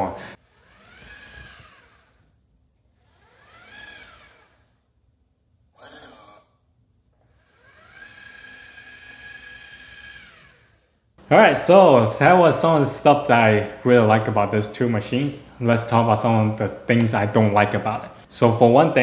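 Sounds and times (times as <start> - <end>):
robot mop motors whining: 0.0 - 4.9, 5.7 - 6.6, 7.2 - 11.0.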